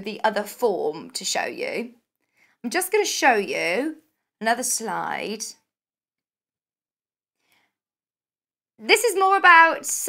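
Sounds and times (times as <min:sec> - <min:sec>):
woman speaking: 0:00.0 - 0:02.0, 0:02.6 - 0:05.7, 0:08.8 - 0:10.0.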